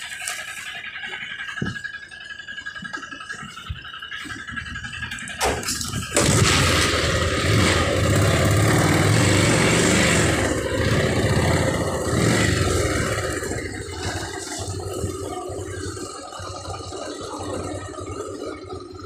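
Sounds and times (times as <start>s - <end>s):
small vehicle engine running: 0.0s - 19.0s.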